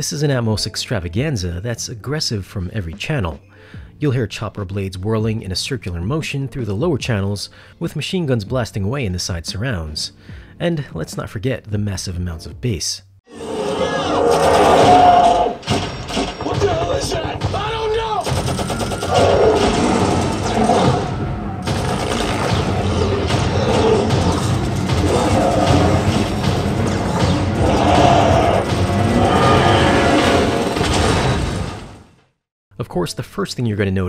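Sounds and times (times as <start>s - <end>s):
people shouting: 13.3s - 15.6s, 16.5s - 18.4s, 22.8s - 30.5s
booms: 14.3s - 32.2s
gunfire: 17.4s - 32.0s
orchestral score: 22.8s - 31.2s.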